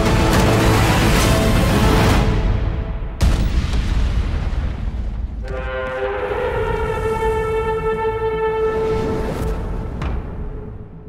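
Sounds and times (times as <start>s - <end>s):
long horn blast: 5.4s - 9.4s.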